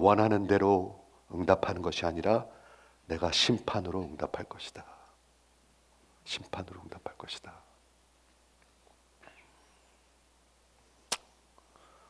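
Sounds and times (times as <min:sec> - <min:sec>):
sharp click: 0:11.1 - 0:11.3.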